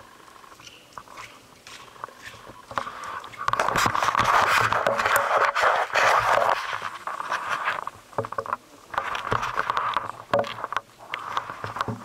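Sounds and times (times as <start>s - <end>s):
camera rustling against clothing: 0.6s - 12.0s.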